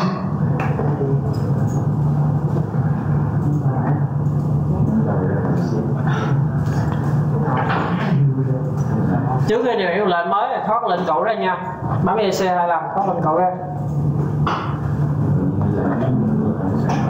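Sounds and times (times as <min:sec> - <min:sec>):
steady low hum: 0:00.0 - 0:17.0
indistinct low voices: 0:13.9 - 0:17.0.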